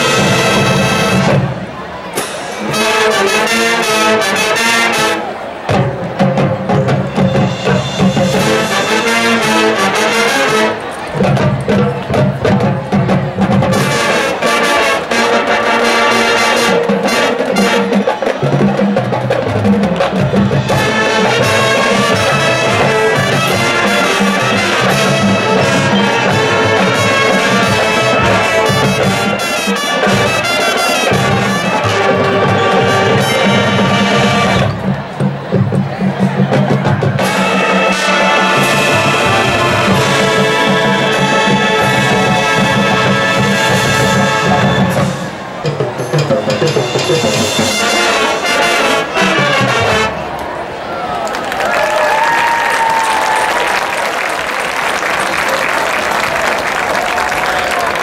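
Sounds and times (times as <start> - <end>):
percussion: 0.0 - 50.4
brass chords: 0.0 - 50.6
marching band playing: 0.0 - 50.9.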